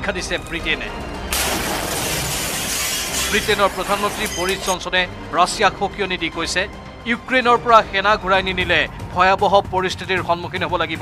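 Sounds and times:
explosion blast and debris: 1.3s - 3.8s.

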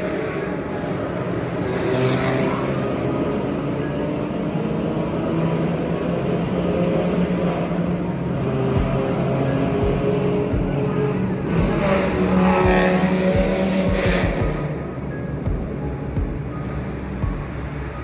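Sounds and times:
car exhaust drone: 5.4s - 18.0s.

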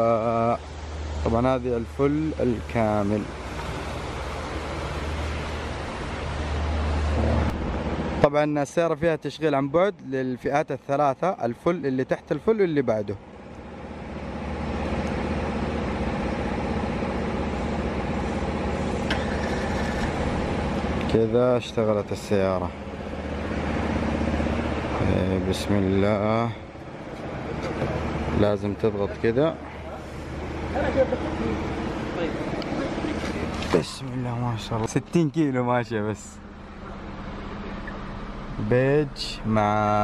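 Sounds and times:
car engine starting and idling: 13.2s - 40.0s.

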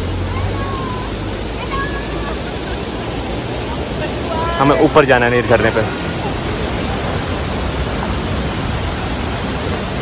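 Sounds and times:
fast-flowing water rushing: 0.0s - 10.0s.

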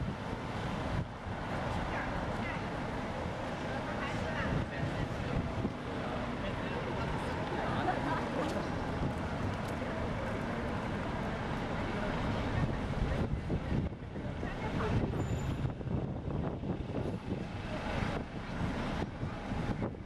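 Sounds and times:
wind buffeting microphone: 0.0s - 11.4s, 12.1s - 20.0s
passing car traffic: 0.0s - 20.0s.

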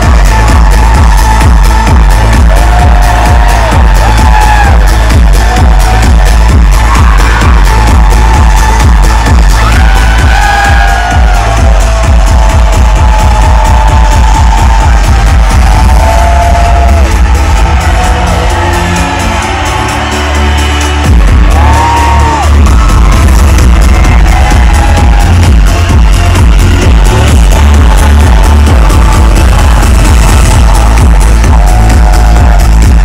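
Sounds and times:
heavy pounding bass beat: 0.0s - 33.0s
loud electronic dance music: 0.0s - 33.0s.

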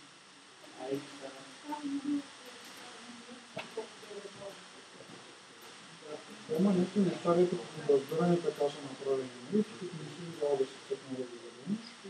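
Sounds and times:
indistinct voices: 0.6s - 12.0s.

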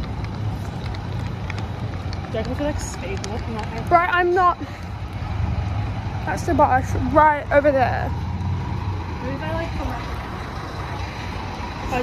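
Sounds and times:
street traffic hum: 0.0s - 12.0s
wind rumbling on microphone: 0.0s - 12.0s.

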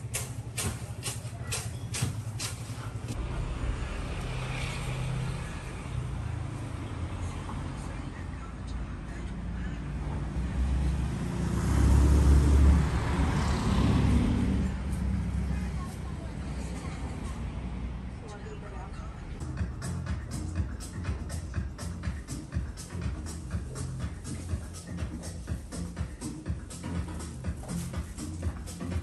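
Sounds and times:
vehicle engine rumble passing: 0.0s - 29.0s
background voices: 2.6s - 29.0s.

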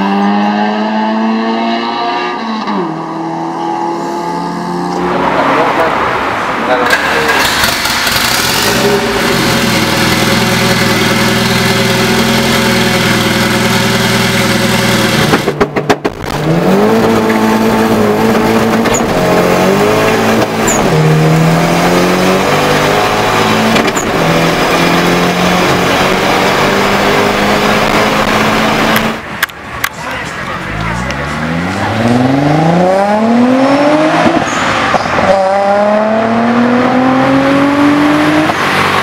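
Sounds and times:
car engine accelerating hard: 0.0s - 29.3s, 30.1s - 39.0s
turbocharged car engine running: 6.9s - 34.2s.

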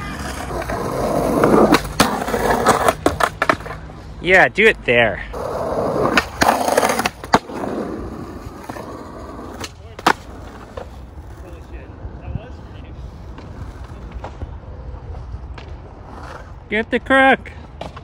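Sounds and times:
skateboard clacks: 0.0s - 3.8s, 8.3s - 11.5s
skateboard wheels rolling on concrete: 0.0s - 18.0s.

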